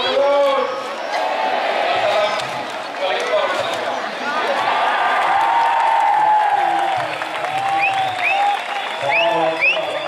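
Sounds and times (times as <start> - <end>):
crowd clapping: 4.7 - 10.0.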